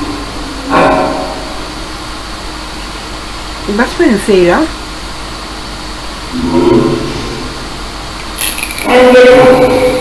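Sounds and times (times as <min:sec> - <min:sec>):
distorted voice-like sound: 0:06.3 - 0:07.8, 0:08.7 - 0:10.0.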